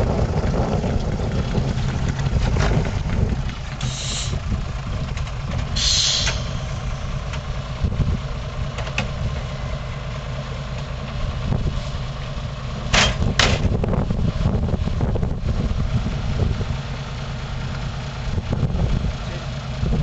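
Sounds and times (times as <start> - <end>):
truck engine idling: 0.0 - 20.0
short sharp sounds: 5.8 - 7.0.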